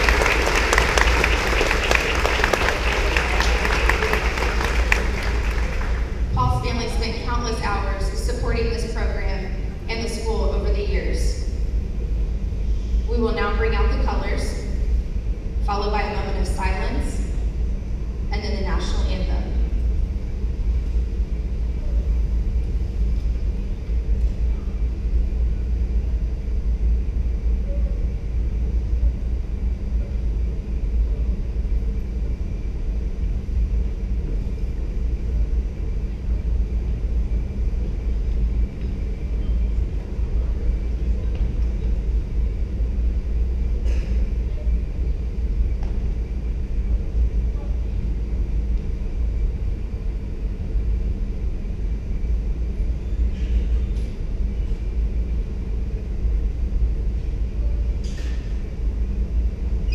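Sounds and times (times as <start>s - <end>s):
low room rumble: 0.0s - 59.9s.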